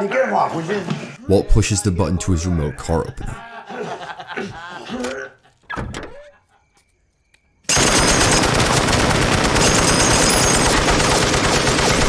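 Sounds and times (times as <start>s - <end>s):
machine gun automatic fire: 7.7s - 12.0s.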